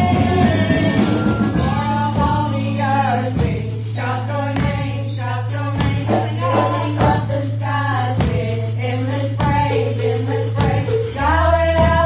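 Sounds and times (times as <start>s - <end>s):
instrumental backing with beat: 0.0s - 12.0s
singers in chorus: 0.0s - 12.0s.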